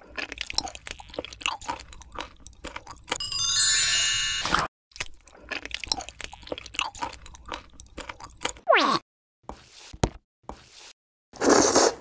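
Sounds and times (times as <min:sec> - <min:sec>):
crunchy biting and chewing: 0:00.0 - 0:03.2, 0:05.0 - 0:08.6
sparkling chime effect: 0:03.2 - 0:04.7.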